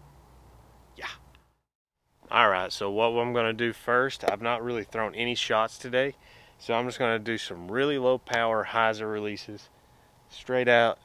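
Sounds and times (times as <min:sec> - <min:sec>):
man saying yeah: 0:01.0 - 0:01.2.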